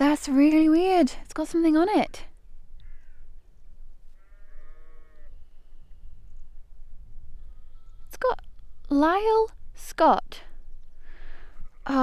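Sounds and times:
drawn-out animal call: 4.1s - 6.2s.

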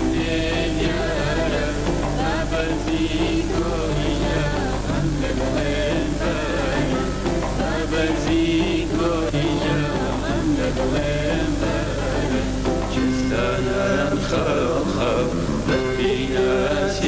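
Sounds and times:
folk ensemble with plucked strings: 0.0s - 17.0s.

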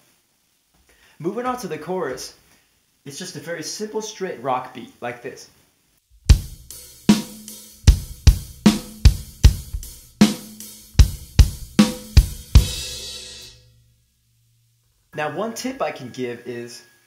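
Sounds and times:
drum kit rock beat: 6.2s - 13.7s
cymbal ringing: 10.4s - 14.0s.

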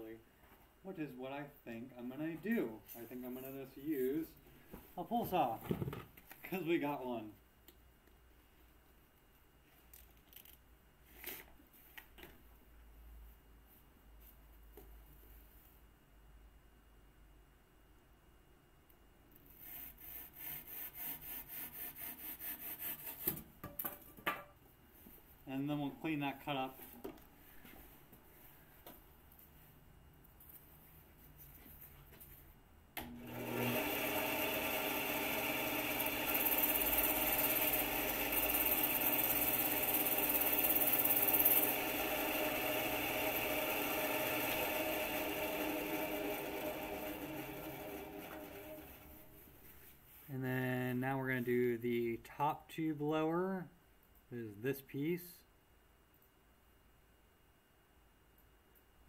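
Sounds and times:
hand saw cutting tube: 19.6s - 23.4s, 33.3s - 49.1s
power tool motor running: 33.2s - 49.2s.

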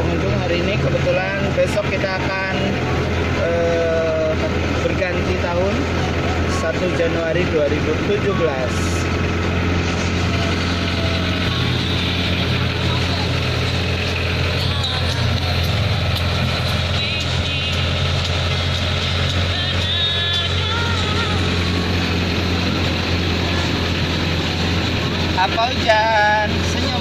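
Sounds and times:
road train engine humming: 0.0s - 27.0s.

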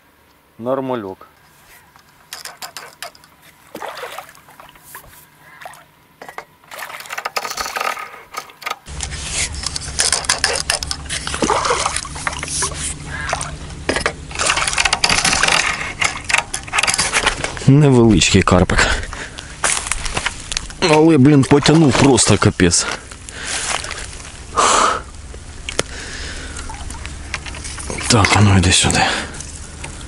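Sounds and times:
fishing rod handling noise: 1.4s - 17.7s, 26.5s - 28.4s
water splashing and churning: 2.4s - 8.9s, 9.8s - 17.4s, 19.6s - 29.4s.

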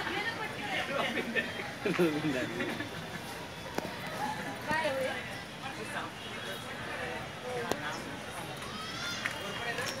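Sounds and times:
faint voices talking: 0.0s - 10.0s
steady outdoor noise: 0.0s - 10.0s.

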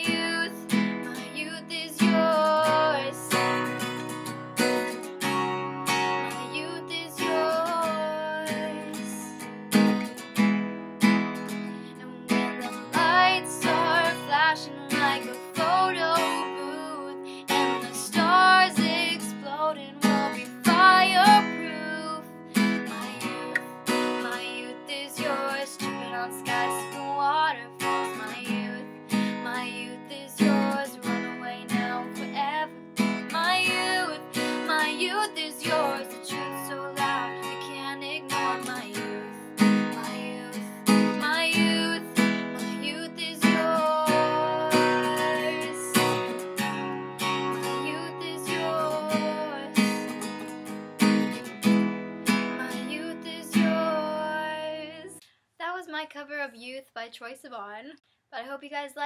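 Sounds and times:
woman singing: 0.0s - 3.9s, 6.2s - 9.5s, 11.8s - 50.4s, 52.6s - 55.2s
acoustic guitar strumming: 0.0s - 55.1s.

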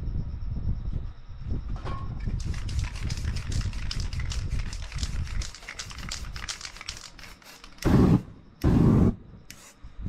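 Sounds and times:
spray can hissing bursts: 2.4s - 9.8s
loud whoosh of flame: 7.8s - 9.4s.

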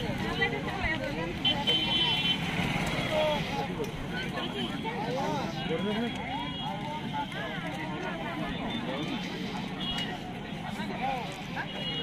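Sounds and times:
crowd voices chattering: 0.0s - 12.0s.

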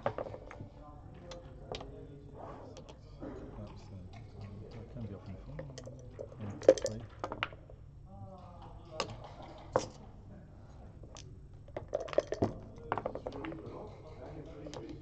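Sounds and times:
dice rattling in cup: 11.0s - 13.4s.

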